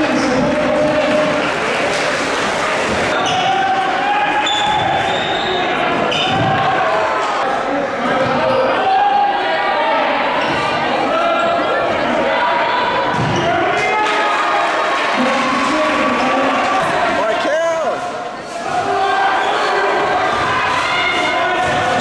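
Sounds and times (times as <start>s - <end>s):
people shouting: 3.1s - 7.4s, 18.5s - 22.0s.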